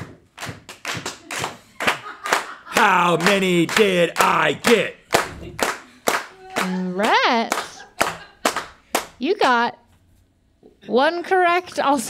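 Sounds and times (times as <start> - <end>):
hand claps: 0.0 - 9.2
laughter: 1.6 - 3.2, 7.6 - 8.6.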